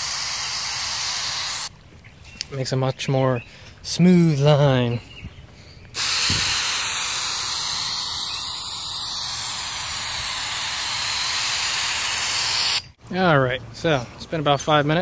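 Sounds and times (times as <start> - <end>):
aerosol can spraying hiss: 0.0 - 1.7, 6.0 - 12.9.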